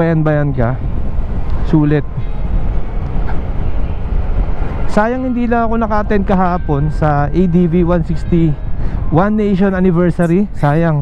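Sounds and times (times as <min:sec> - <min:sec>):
wind buffeting microphone: 0:00.0 - 0:11.0
scooter riding rumble: 0:00.8 - 0:06.4.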